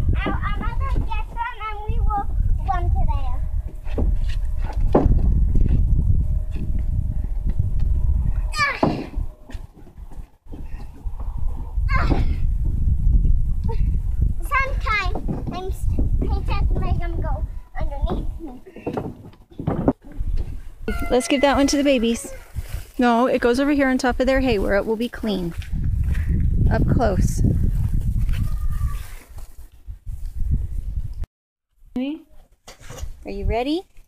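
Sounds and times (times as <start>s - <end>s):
wind rumbling on microphone: 0.0s - 31.3s
hollow knocks on wooden trailer bed: 4.7s - 5.3s.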